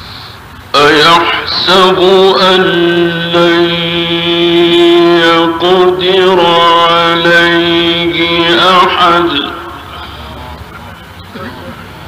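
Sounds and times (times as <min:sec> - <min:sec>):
man chanting melodically: 0:00.7 - 0:11.6.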